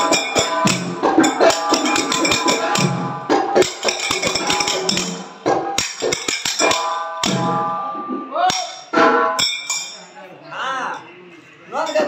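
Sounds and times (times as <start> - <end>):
small hand cymbals ringing: 0.0 - 3.0, 3.6 - 7.7, 8.5 - 10.2.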